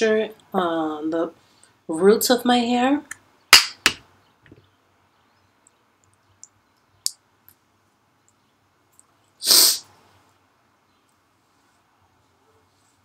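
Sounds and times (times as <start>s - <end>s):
sharp burst of breath: 9.4s - 9.9s.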